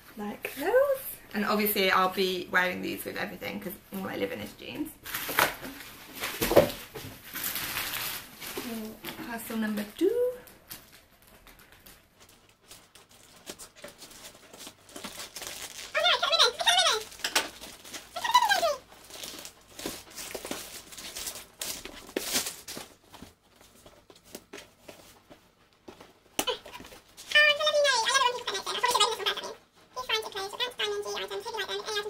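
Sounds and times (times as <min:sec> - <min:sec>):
packaging ripping: 0:05.0 - 0:05.6, 0:07.3 - 0:08.8, 0:10.7 - 0:23.1
packaging rustling and crinkling: 0:05.0 - 0:32.0.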